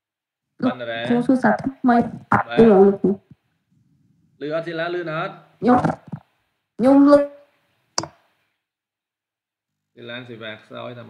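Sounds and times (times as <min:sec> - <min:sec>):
person speaking a syllable: 0:00.6 - 0:03.2, 0:05.6 - 0:06.2.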